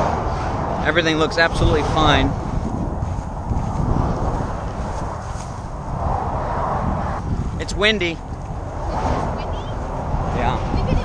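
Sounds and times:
passing highway traffic: 0:00.0 - 0:11.0
wind buffeting microphone: 0:00.0 - 0:11.0.

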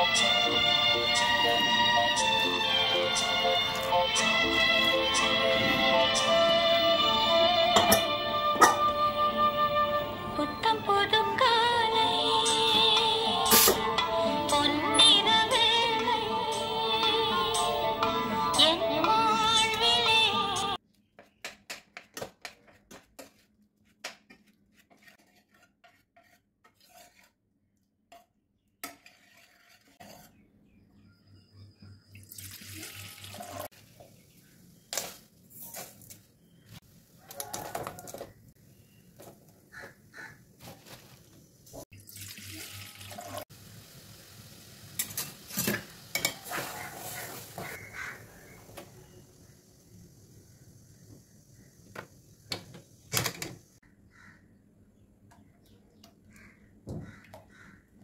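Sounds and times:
pots and utensils clattering: 0:07.7 - 0:08.9, 0:45.0 - 0:47.8
ladle scraping pressure cooker: 0:13.4 - 0:13.9.

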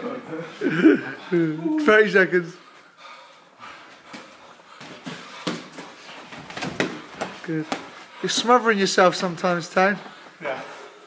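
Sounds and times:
footwork on canvas: 0:03.5 - 0:09.2.

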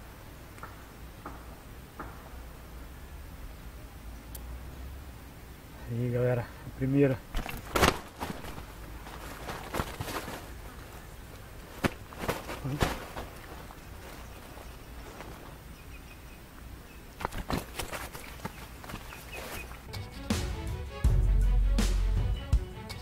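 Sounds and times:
faint outdoor background: 0:00.0 - 0:23.0
hands rustling and knocking: 0:07.3 - 0:16.0, 0:17.1 - 0:19.9.

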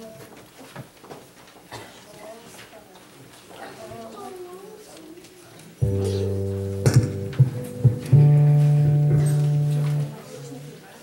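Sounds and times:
live band playing chords: 0:05.8 - 0:10.3.

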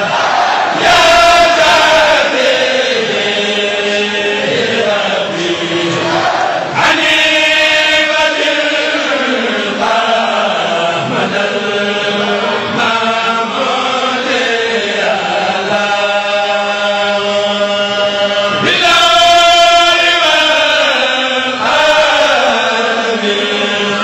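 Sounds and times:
male group chanting in unison: 0:00.0 - 0:24.0.

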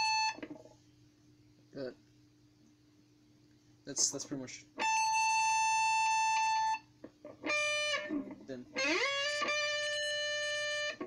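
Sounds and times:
electric guitar high note: 0:07.4 - 0:11.0.

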